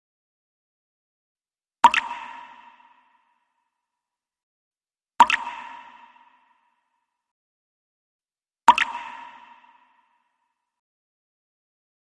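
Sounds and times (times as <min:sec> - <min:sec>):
water drops plopping into sink: 0:01.8 - 0:03.0, 0:05.2 - 0:06.3, 0:08.7 - 0:09.8.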